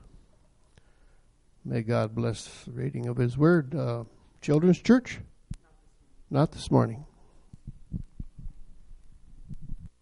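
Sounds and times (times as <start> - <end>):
soft low thuds: 7.6 - 8.7.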